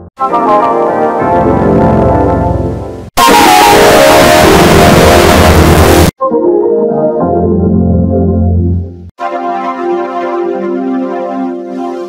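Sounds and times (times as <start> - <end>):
harsh noise: 0.2 - 6.2
distorted jingle: 1.2 - 6.1
pulsing low buzz: 1.5 - 6.1.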